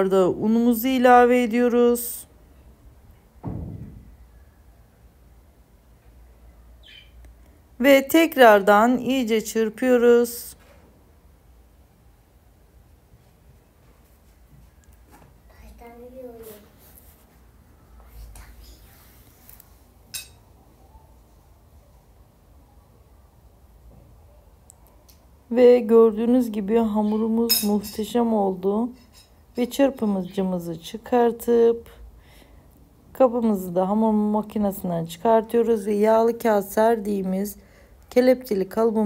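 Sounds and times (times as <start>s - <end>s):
faint low hum: 0.0s - 39.0s
dull thump: 3.4s - 4.1s
metal bowl clink: 20.1s - 20.4s, 27.5s - 28.2s.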